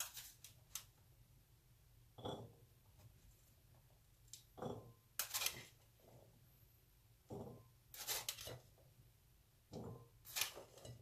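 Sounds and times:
metal spoon scraping in strainer: 0:05.2 - 0:05.8, 0:07.9 - 0:08.7, 0:10.2 - 0:11.0.

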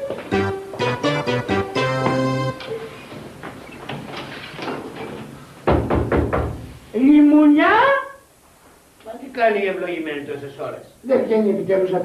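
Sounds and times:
knocking on a door: 0:05.6 - 0:06.8.

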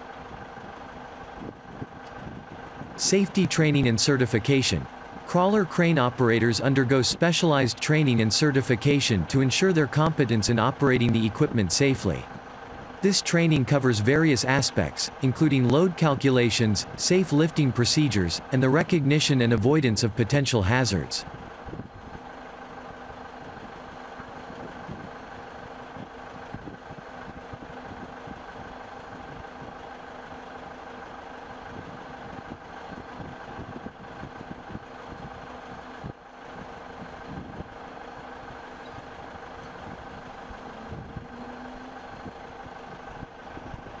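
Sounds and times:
machine engine humming: 0:00.0 - 0:44.0.

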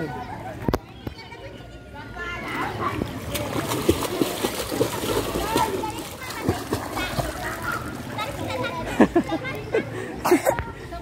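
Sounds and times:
child splashing in pool: 0:02.8 - 0:08.8.

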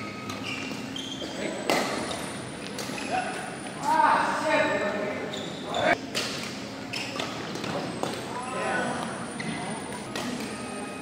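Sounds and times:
shoes squeaking on court: 0:00.0 - 0:03.7, 0:05.2 - 0:11.0.

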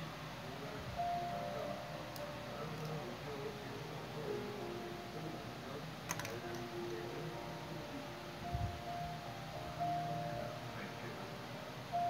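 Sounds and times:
slow background music: 0:00.0 - 0:12.0
rattle of clicks: 0:06.1 - 0:07.0.

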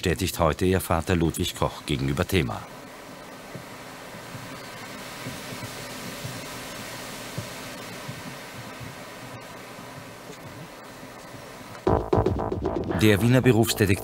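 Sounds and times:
background hiss: 0:00.0 - 0:14.0
faint hum: 0:00.0 - 0:14.0.

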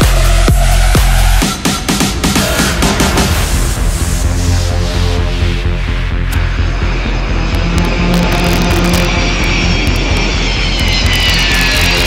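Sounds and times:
background music with low beat: 0:00.0 - 0:12.0
jet airliner engines roaring: 0:00.0 - 0:12.0.

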